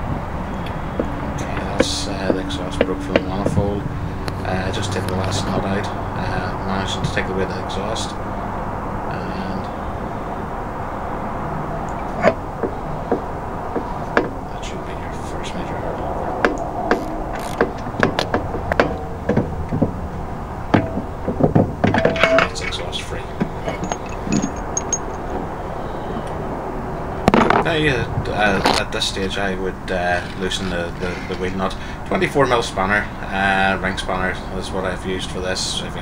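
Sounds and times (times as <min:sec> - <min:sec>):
metal exhaust knocks and clunks: 0:00.0 - 0:05.7, 0:12.0 - 0:14.5, 0:16.4 - 0:26.3
steady background hum: 0:00.0 - 0:36.0.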